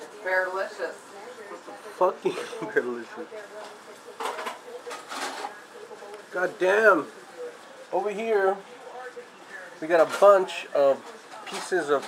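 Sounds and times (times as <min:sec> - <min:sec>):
man laughing softly: 0:02.2 - 0:03.0.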